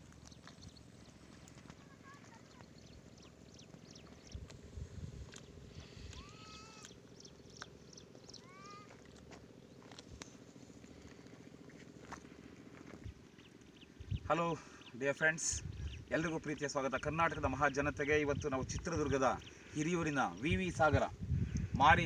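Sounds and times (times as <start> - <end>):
bird calling: 0.0 - 17.9
wind rumble on microphone: 2.8 - 6.7, 12.8 - 14.3, 15.5 - 22.0.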